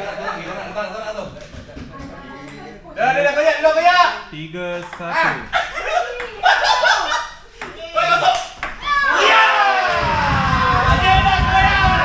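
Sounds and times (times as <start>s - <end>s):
men talking indistinctly: 2.4s - 6.1s.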